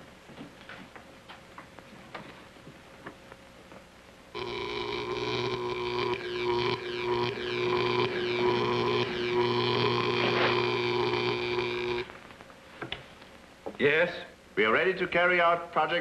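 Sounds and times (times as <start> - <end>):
loud buzzing drone: 4.4 - 12.1.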